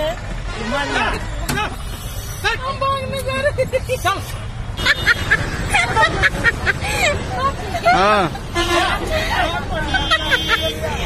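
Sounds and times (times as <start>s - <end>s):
people talking over one another: 5.6s - 11.0s
background chatter: 5.7s - 11.0s.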